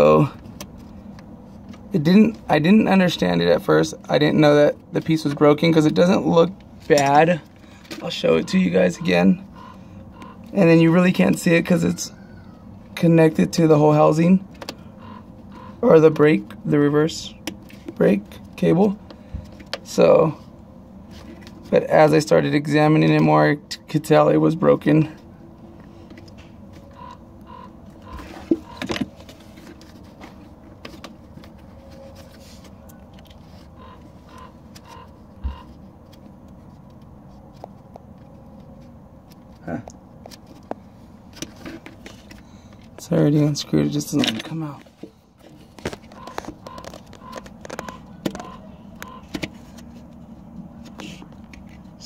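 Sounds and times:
low background hum: 0.0 - 52.0
plastic parts clicking and scraping: 25.8 - 43.0, 44.0 - 52.0.

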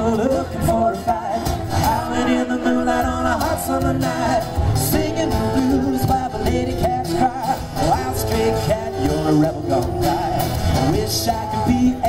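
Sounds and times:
acoustic guitars strummed: 0.0 - 12.0
man singing into a microphone: 0.0 - 12.0.

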